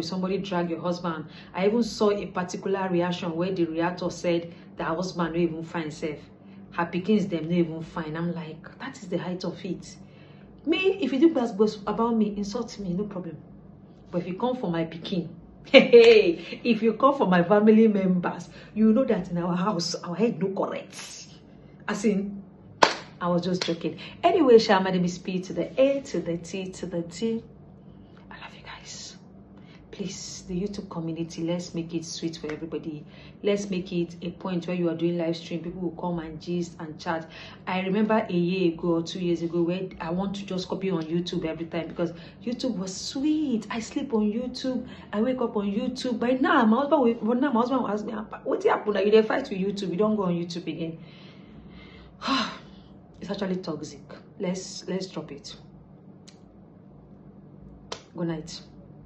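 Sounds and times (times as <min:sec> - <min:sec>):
faint room hum: 0:00.0 - 0:59.0
woman whispering: 0:28.3 - 0:29.2.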